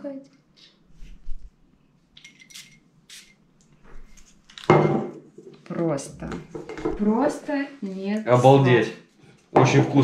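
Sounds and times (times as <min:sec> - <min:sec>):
perfume atomizer spraying: 0:02.2 - 0:03.4.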